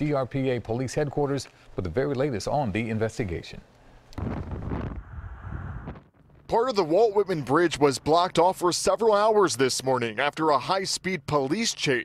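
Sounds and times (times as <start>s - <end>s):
wind buffeting microphone: 4.2s - 6.5s.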